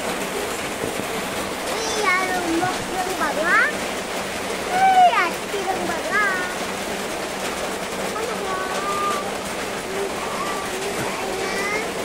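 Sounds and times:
rain on a tin roof: 0:00.0 - 0:12.0.

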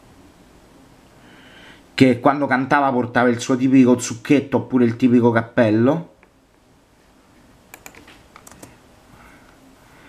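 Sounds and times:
computer keyboard keys clicking: 0:07.7 - 0:08.8.

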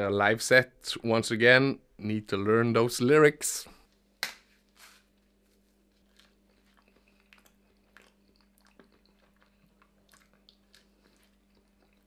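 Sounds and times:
banana being peeled: 0:04.2 - 0:08.2
biting and chewing: 0:05.9 - 0:12.0.

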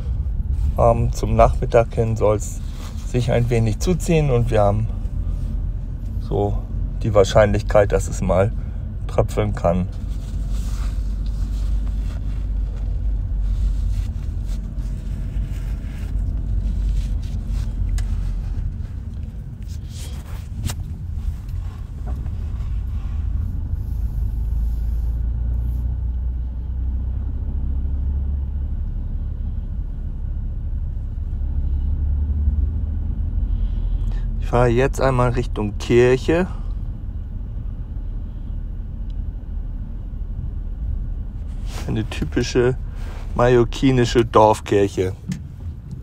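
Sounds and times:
engine and road rumble: 0:00.0 - 0:46.0.

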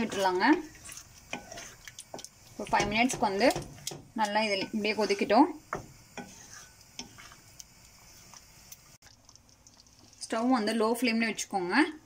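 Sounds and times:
spoon stirring thick mixture: 0:00.0 - 0:10.7
spoon knocking against pan: 0:02.1 - 0:04.9, 0:05.6 - 0:06.4.

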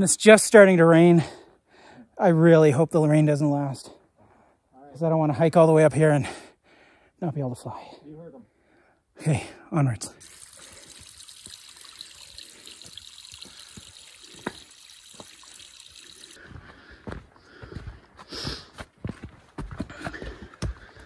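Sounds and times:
light rain hiss: 0:10.2 - 0:16.4
water drips: 0:10.2 - 0:16.4
footsteps on rocky trail: 0:16.4 - 0:21.0.

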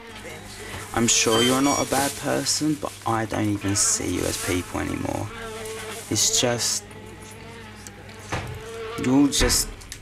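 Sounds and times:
housefly buzzing: 0:00.0 - 0:09.6.

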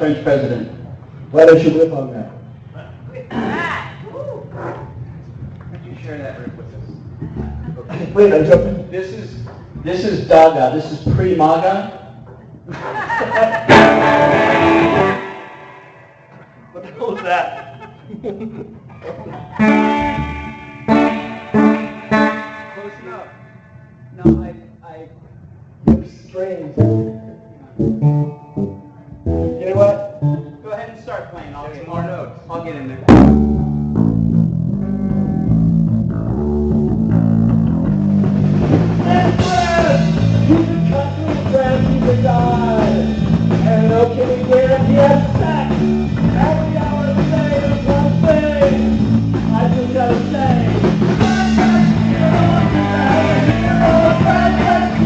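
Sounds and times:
low repeating bass line: 0:07.2 - 0:09.0, 0:13.7 - 0:16.7, 0:19.5 - 0:24.6, 0:26.8 - 0:30.6, 0:33.1 - 0:55.0
rock band playing: 0:13.6 - 0:16.6, 0:19.5 - 0:24.5, 0:27.8 - 0:30.5, 0:33.1 - 0:55.0
guitar chord ringing: 0:13.7 - 0:16.8, 0:19.6 - 0:24.4.

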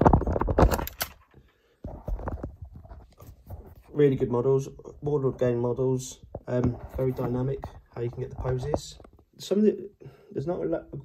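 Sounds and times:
small hard knocks and scrapes: 0:00.0 - 0:03.9, 0:06.2 - 0:09.3.

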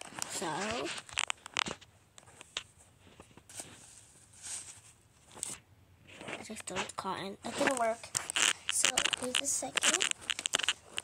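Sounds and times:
paper and tape crackling and tearing: 0:00.0 - 0:02.5, 0:07.5 - 0:11.0.

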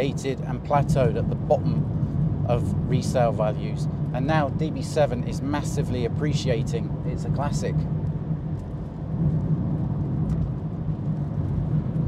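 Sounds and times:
car engine drone in cabin: 0:00.0 - 0:12.0
tyre and road noise: 0:00.0 - 0:12.0.

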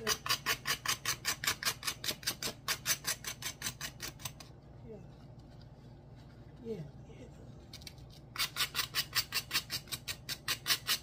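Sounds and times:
knife scraping burnt toast: 0:08.3 - 0:11.0.

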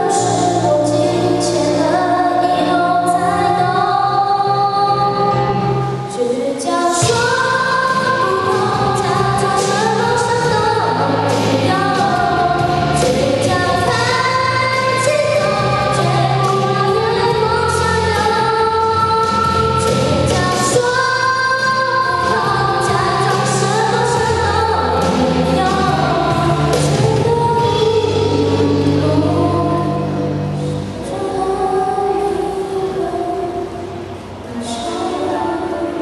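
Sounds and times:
girl singing into microphone: 0:00.0 - 0:36.0
karaoke backing track: 0:00.0 - 0:36.0.

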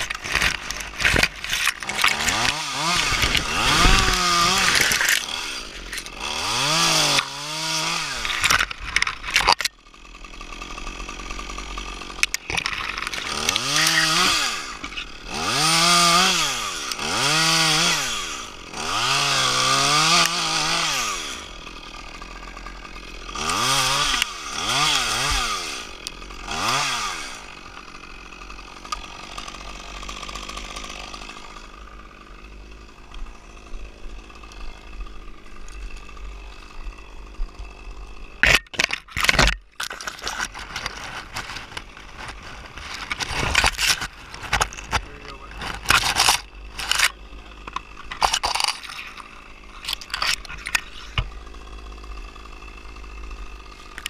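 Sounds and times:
chainsaw revving and idling: 0:00.0 - 0:54.0.

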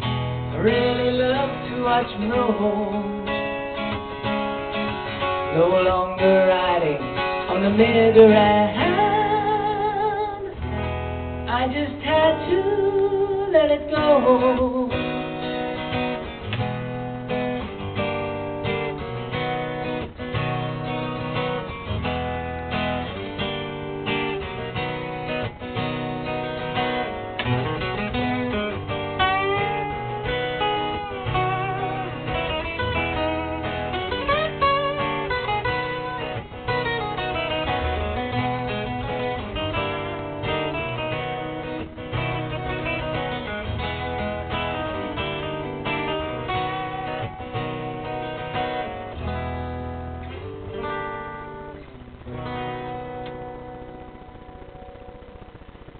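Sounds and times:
acoustic guitar strumming: 0:00.0 - 0:55.9.

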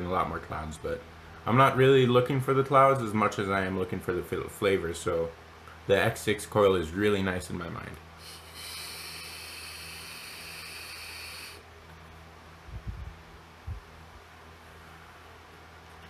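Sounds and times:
soft puffs of breath: 0:08.2 - 0:11.6
vape coil hissing: 0:08.2 - 0:11.7.

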